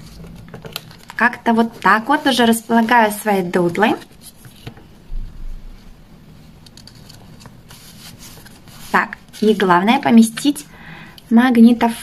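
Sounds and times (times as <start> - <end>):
paper sticker rustling: 6.7 - 9.7.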